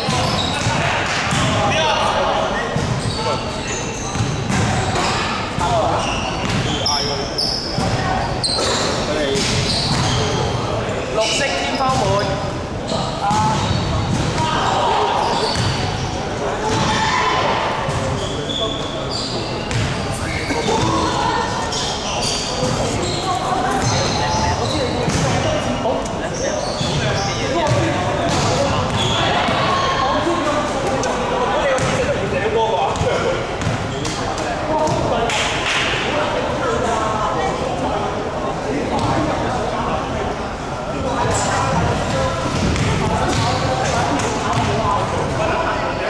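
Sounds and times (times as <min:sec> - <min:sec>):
voices chattering: 0:00.0 - 0:46.0
basketballs bouncing on wooden court: 0:41.7 - 0:43.7.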